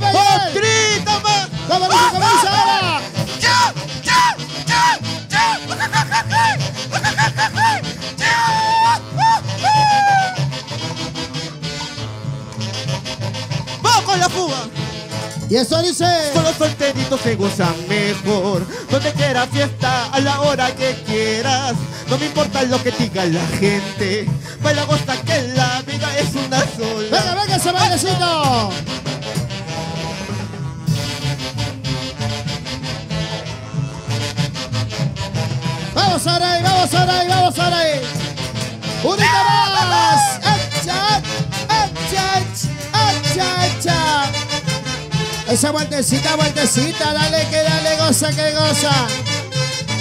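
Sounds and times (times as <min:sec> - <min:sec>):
person shouting: 0:00.0 - 0:10.5, 0:39.0 - 0:44.4
live band instrumental: 0:00.0 - 0:50.0
saxophones: 0:00.0 - 0:50.0
timbales and congas: 0:01.5 - 0:16.9, 0:17.6 - 0:50.0.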